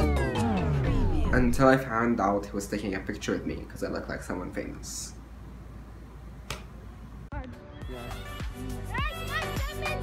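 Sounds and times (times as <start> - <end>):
music with voices: 0.0 - 1.6, 7.3 - 10.0
low steady hum: 0.0 - 7.3
sharp click: 6.4 - 6.7.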